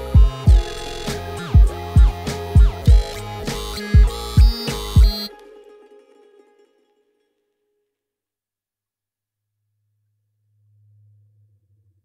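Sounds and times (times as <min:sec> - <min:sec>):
deep kick drums: 0:00.0 - 0:05.2
layered synth tones: 0:00.0 - 0:05.3.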